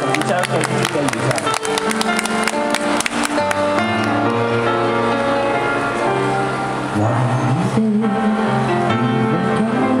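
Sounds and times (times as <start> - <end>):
grand piano playing a ballad: 0.0 - 10.0.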